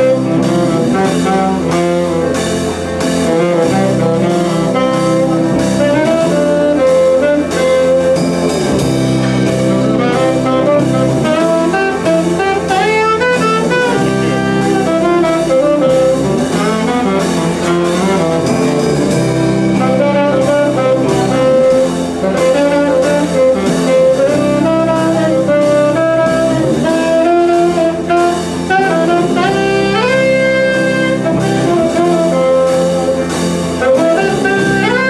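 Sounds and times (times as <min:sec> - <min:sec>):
bass guitar: 0:00.0 - 0:35.0
drum kit: 0:00.0 - 0:35.0
electric guitar: 0:00.0 - 0:35.0
saxophone melody: 0:00.0 - 0:35.0.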